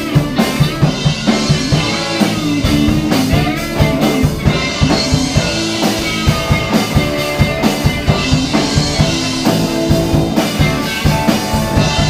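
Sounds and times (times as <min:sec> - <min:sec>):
band playing pop-rock: 0:00.0 - 0:12.0.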